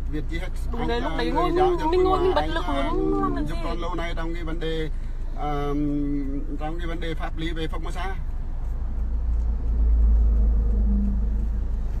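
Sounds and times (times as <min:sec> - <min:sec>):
road noise: 0:00.0 - 0:12.0
vehicle engine rumble: 0:00.0 - 0:12.0.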